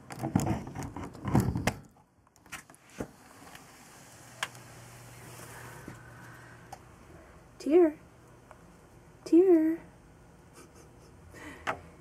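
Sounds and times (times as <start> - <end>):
wooden sliding door scraping: 2.8 - 6.0.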